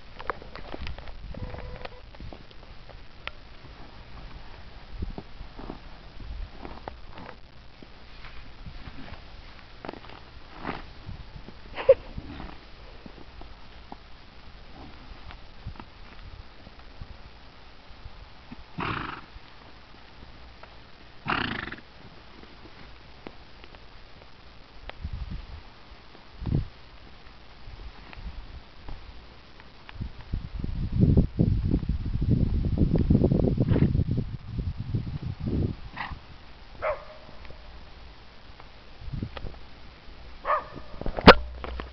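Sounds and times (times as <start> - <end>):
donkey scuffling on dirt: 0.1 - 30.3, 38.5 - 41.9
horse snorting: 18.8 - 19.3, 21.2 - 21.9.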